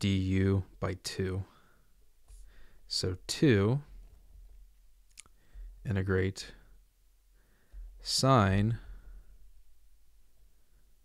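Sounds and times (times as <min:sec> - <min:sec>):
man talking: 0:00.0 - 0:01.6, 0:02.9 - 0:03.9, 0:05.8 - 0:06.7, 0:08.0 - 0:09.0.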